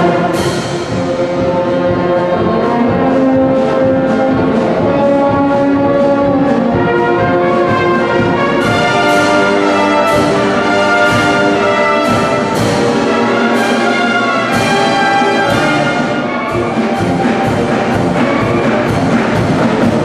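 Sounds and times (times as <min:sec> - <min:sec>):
brass band playing chords: 0:00.0 - 0:20.0.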